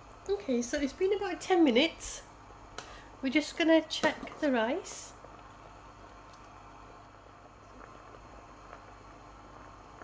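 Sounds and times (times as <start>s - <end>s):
water boiling in a pan: 0.0s - 10.0s.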